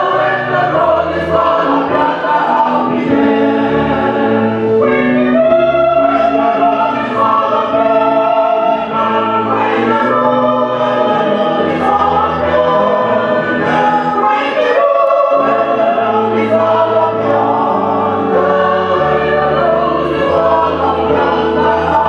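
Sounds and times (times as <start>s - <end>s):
church choir singing: 0.0s - 22.0s.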